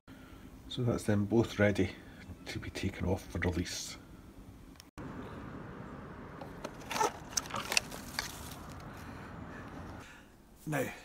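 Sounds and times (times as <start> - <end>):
plastic tubs clicking and crackling: 6.4 - 8.9.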